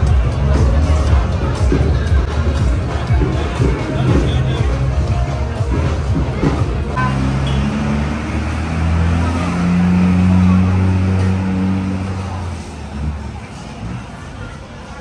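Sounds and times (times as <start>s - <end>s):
vehicle engine passing: 5.7s - 14.3s.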